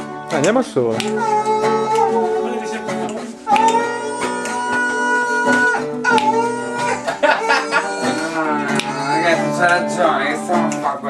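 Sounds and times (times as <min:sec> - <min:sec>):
person singing: 0:00.0 - 0:10.8
strummed acoustic guitar: 0:00.0 - 0:11.0.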